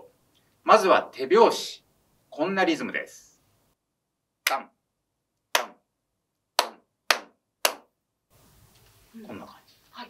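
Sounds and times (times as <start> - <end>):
hand claps: 5.6 - 5.8, 6.6 - 7.9.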